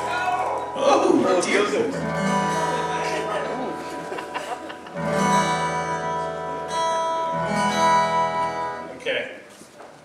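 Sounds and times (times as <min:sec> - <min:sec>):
acoustic guitar chords strummed: 0:00.0 - 0:08.9.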